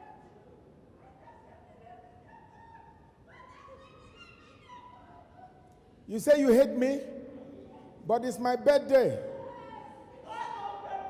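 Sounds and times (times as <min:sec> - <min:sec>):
low hall hum: 0:00.0 - 0:11.0.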